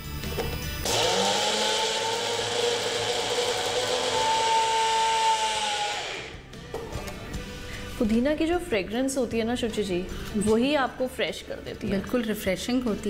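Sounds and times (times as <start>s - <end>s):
electric blender grinding: 0.8s - 6.5s.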